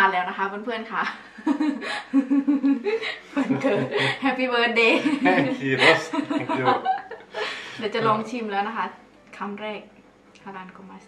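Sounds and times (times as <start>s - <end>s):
people talking: 0.0s - 11.0s
woman and man laughing: 1.4s - 8.2s.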